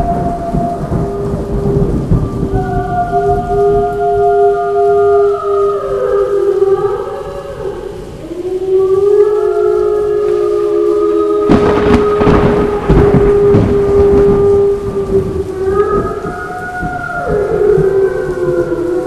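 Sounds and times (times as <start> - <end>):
rumbling thunder: 0.0 - 8.4, 9.0 - 19.0
steady rain: 0.0 - 19.0
wolves howling: 0.0 - 19.0.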